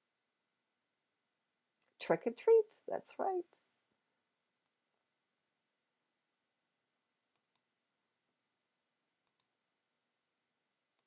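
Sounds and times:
faint sharp clicks: 9.2 - 9.5.

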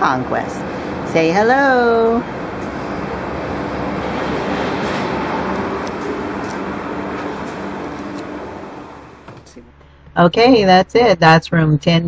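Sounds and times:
ventilation rushing noise: 0.0 - 11.6.

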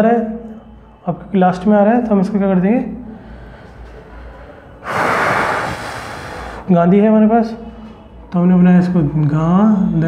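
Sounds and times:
faint room noise: 0.0 - 10.0
man breathing into microphone: 3.1 - 6.7.

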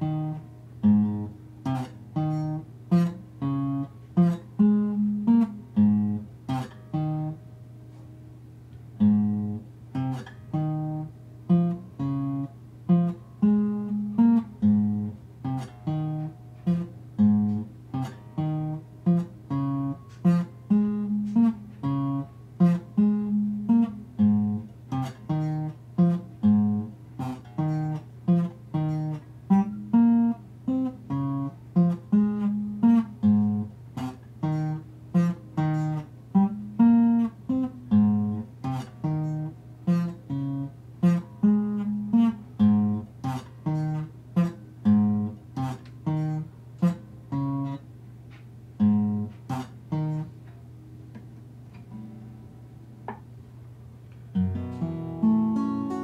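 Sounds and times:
acoustic guitar playing: 0.0 - 53.4, 54.2 - 56.0.

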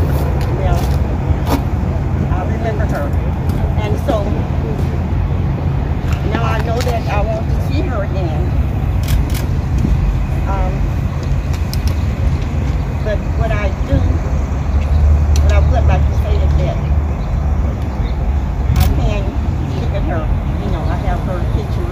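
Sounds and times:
low rumble of street noise: 0.0 - 21.9.

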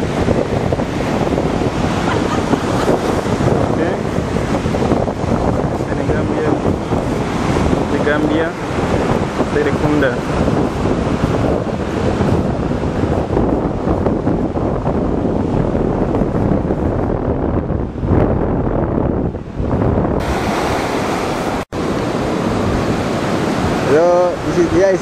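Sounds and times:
surf washing onto beach: 0.0 - 16.9, 19.3 - 25.0
wind buffeting microphone: 0.0 - 25.0.

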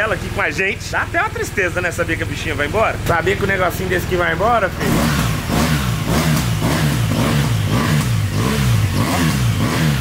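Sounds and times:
motorcycle engine revving: 3.0 - 10.0.

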